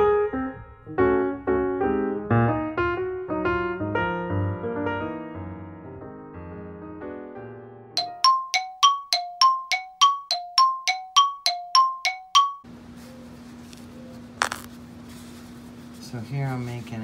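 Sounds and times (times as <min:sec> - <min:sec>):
soft piano music: 0:00.0 - 0:12.7.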